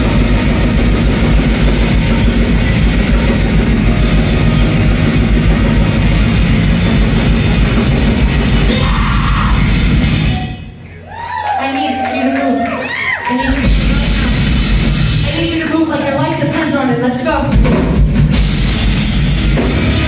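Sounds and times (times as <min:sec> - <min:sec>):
distorted guitars: 0:00.0 - 0:10.8, 0:13.5 - 0:16.6, 0:17.4 - 0:20.0
drums: 0:00.0 - 0:20.0.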